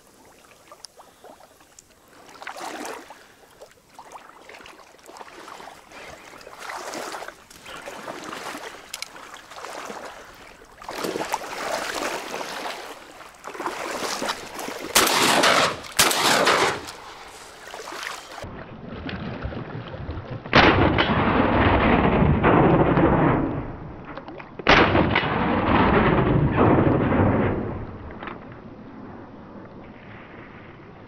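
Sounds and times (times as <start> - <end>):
shotgun shots with echo: 15.0 - 17.0.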